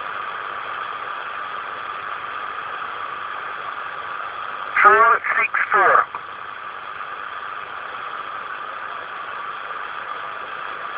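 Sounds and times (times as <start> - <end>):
radio static hiss: 4.4 - 6.8
voice on the radio: 4.8 - 6.2.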